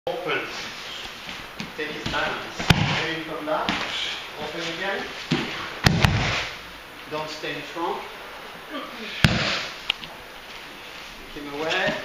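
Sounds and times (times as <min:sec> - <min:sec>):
body slapping padded mat: 0:01.3 - 0:04.6, 0:05.2 - 0:06.6, 0:09.2 - 0:09.8.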